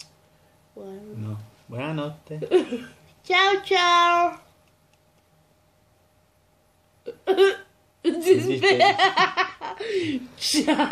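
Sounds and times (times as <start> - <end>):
faint steady hum: 0.0 - 10.9.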